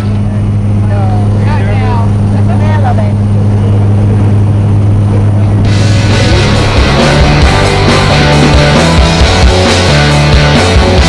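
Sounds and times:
plane engine drone in cabin: 0.0s - 11.0s
loud rushing noise: 4.3s - 11.0s.

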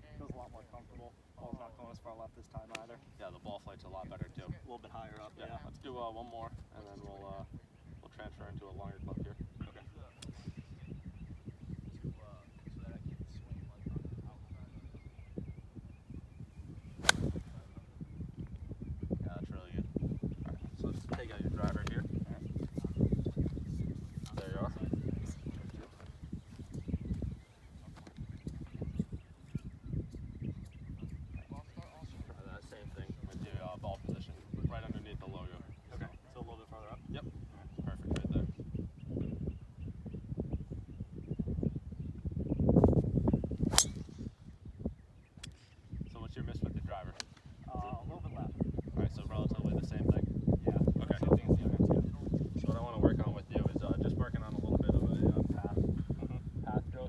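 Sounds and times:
wind rumble on microphone: 0.0s - 57.0s
golf club striking ball: 17.0s - 17.4s, 43.7s - 44.2s.

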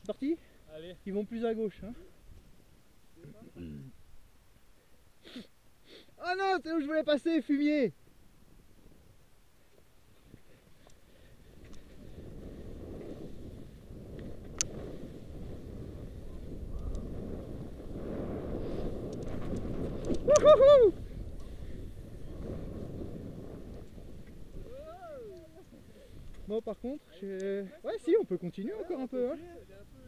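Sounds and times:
wind rushing over microphone: 11.3s - 27.0s
skier whooping: 16.2s - 17.5s, 19.9s - 21.6s, 24.6s - 26.2s.

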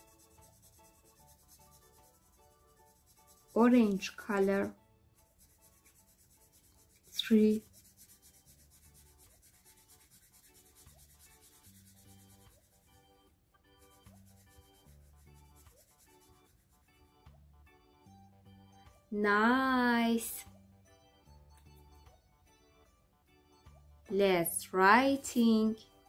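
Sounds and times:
marker scratching on paper: 0.0s - 13.1s, 13.7s - 16.9s
soft background music: 0.0s - 26.0s
person speaking: 3.4s - 4.7s, 7.0s - 7.7s.

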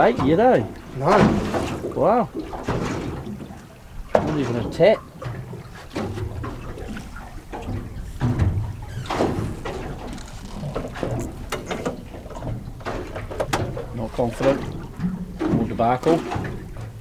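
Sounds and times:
water lapping against boat hull: 0.0s - 17.0s
short knocks: 4.1s - 16.8s.

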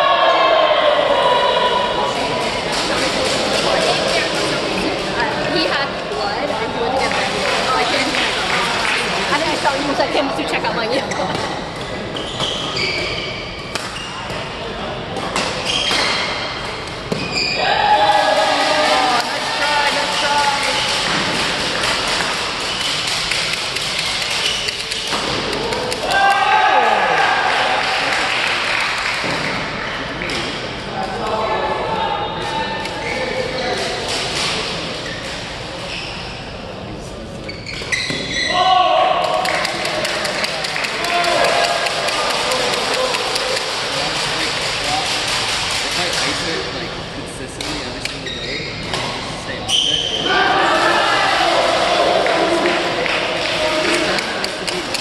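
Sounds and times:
sports hall background noise: 0.0s - 55.0s
players calling out: 24.4s - 28.8s.

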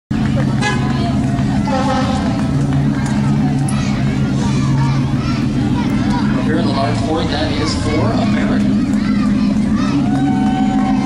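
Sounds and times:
people's voices: 0.1s - 11.0s
vehicle engine running: 0.1s - 11.0s.

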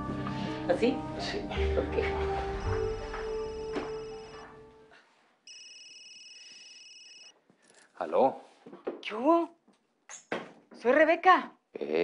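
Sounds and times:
background music: 0.0s - 5.0s
electronic telephone ringing: 2.8s - 4.5s, 5.5s - 7.3s.

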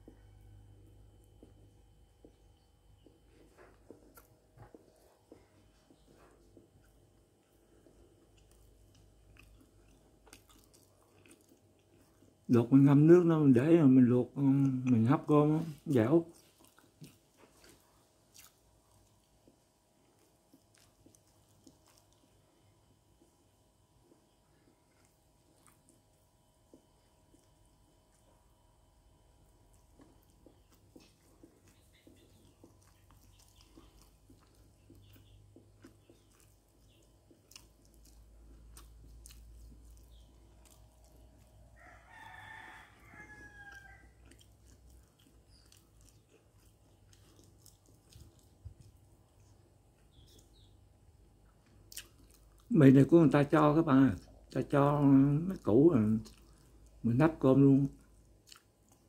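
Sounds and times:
rooster crowing: 41.8s - 44.4s.

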